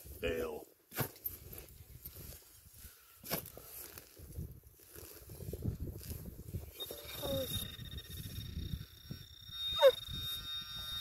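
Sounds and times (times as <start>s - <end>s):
soil and grass scraping: 0.9s - 11.0s.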